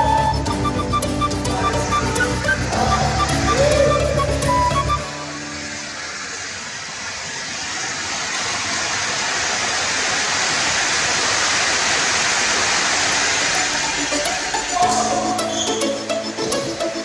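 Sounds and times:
steady rushing hiss: 0.0 - 17.0.

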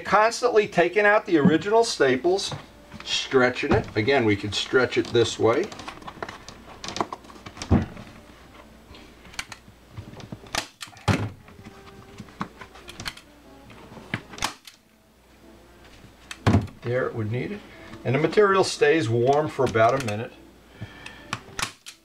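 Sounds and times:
staple gun clicks: 14.4 - 14.8, 21.3 - 22.0.

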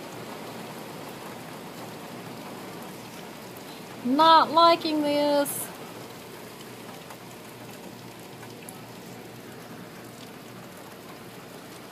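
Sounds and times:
heavy rain hissing: 0.0 - 11.9.

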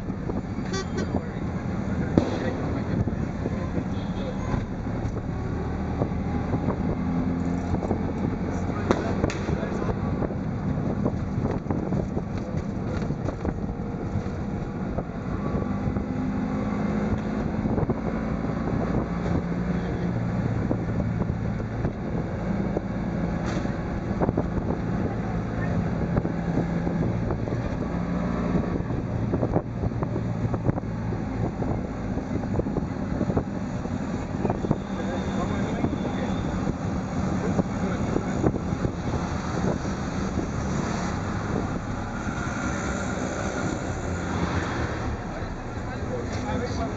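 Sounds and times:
auto rickshaw engine running: 0.0 - 46.9
road noise: 0.0 - 46.9
wind buffeting microphone: 0.0 - 46.9.

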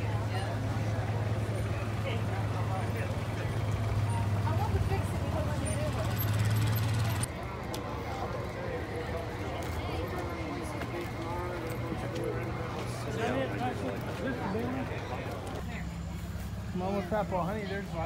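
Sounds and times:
crowd chatter: 0.0 - 18.0
vehicle engine humming: 0.0 - 18.0.

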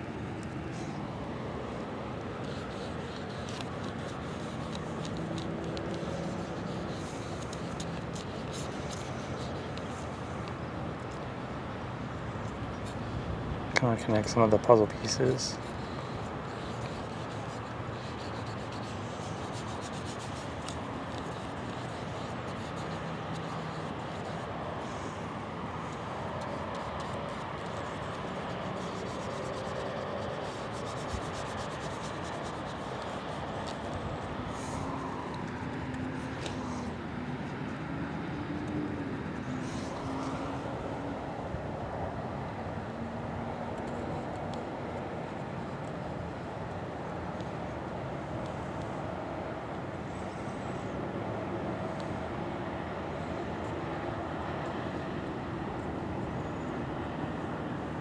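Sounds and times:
distant traffic rumble: 0.0 - 58.0.

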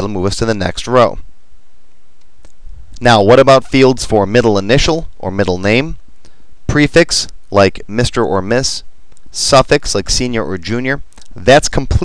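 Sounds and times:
person speaking: 0.0 - 1.3, 2.4 - 12.0.

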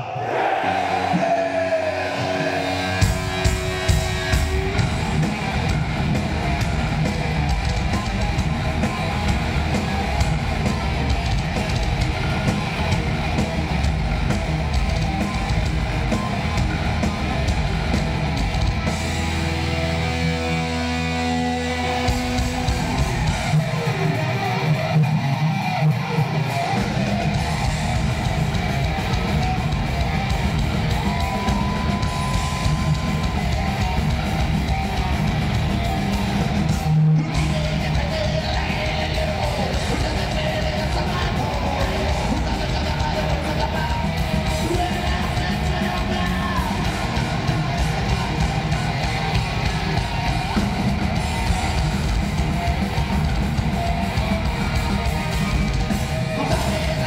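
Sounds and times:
crowd cheering: 0.0 - 57.0
metal band playing live: 0.0 - 57.0
electric guitars ringing: 0.3 - 57.0.

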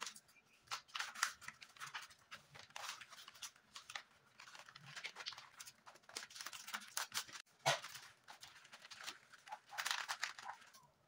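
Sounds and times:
wrapping paper rustling and crinkling: 0.0 - 11.0.

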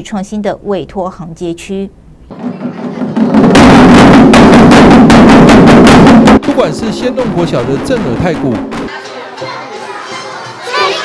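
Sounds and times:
taiko drum strikes: 2.3 - 8.9.

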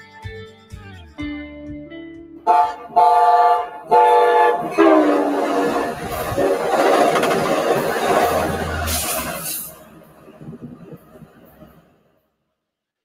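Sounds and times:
train horn blasts: 2.4 - 6.7
train passing close by: 2.5 - 12.3.

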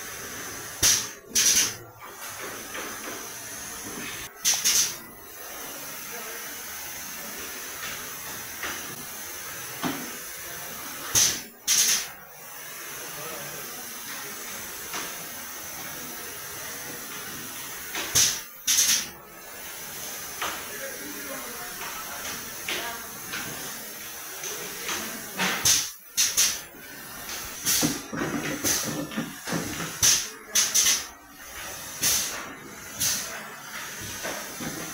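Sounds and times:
compressed air hisses: 0.0 - 1.8, 10.8 - 34.9
steady hiss: 10.2 - 28.0.

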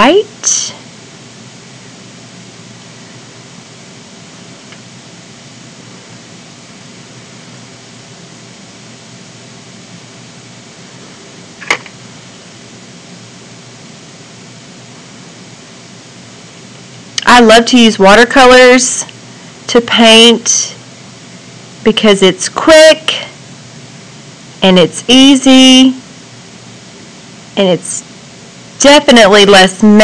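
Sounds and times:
room tone hiss: 0.0 - 30.0.

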